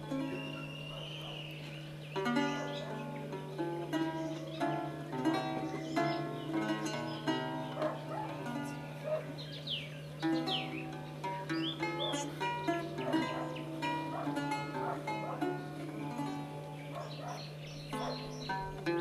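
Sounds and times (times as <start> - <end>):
lute played solo: 0.0 - 17.0
steady low hum: 0.0 - 19.0.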